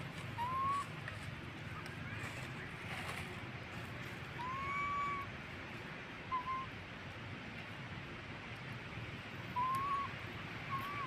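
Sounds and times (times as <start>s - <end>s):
baby monkey coo calls: 0.2s - 1.0s, 4.4s - 5.3s, 9.5s - 11.0s.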